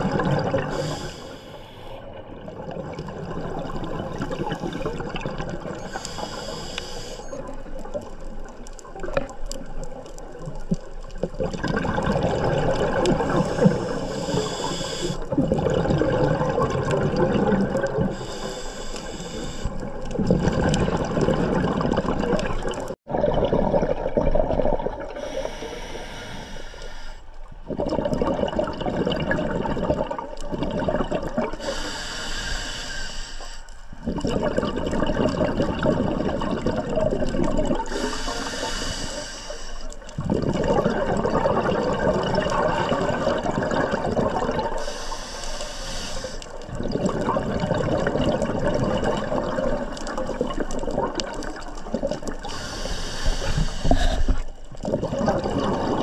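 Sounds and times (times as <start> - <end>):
exhaled bubbles gurgling: 0.0 - 33.2, 33.9 - 56.0
regulator hissing inhale: 0.6 - 2.1, 5.8 - 7.5, 13.2 - 15.3, 18.1 - 19.9, 25.2 - 27.4, 31.6 - 34.0, 37.9 - 40.1, 44.7 - 46.7, 52.4 - 54.6.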